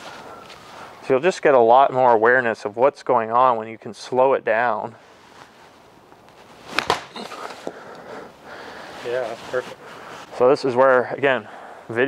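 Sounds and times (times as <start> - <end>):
faint rustling: 4.9 - 11.4.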